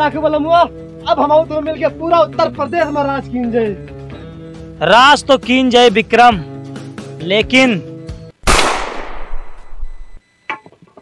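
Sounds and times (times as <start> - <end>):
gunshot with echo: 8.4 - 9.6.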